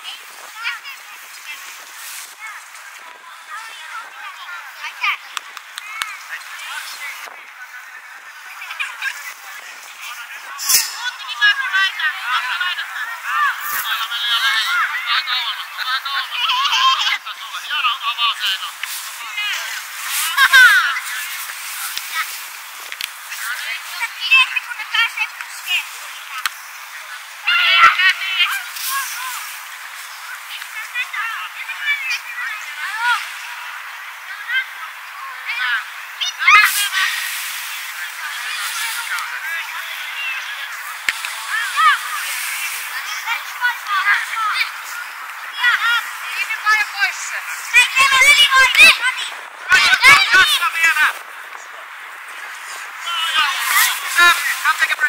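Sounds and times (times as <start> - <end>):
wind noise hiss: 0.0 - 55.0
children shouting: 27.4 - 29.5, 38.3 - 51.2.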